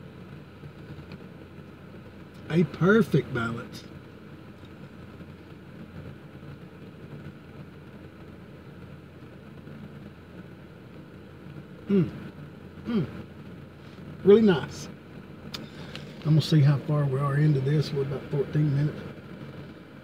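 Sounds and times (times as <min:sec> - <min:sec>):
vehicle cabin hum: 0:00.0 - 0:20.0
man murmuring mmm: 0:11.8 - 0:12.2, 0:12.8 - 0:13.2.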